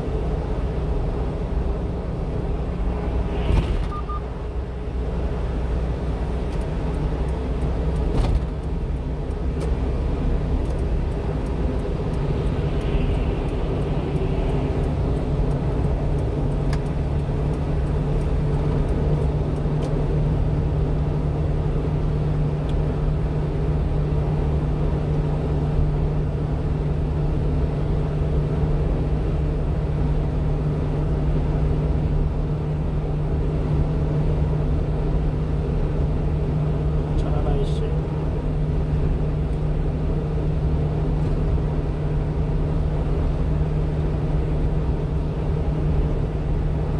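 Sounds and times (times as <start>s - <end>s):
constant low hum: 0.0s - 46.9s
truck engine and tyres droning: 0.0s - 46.9s.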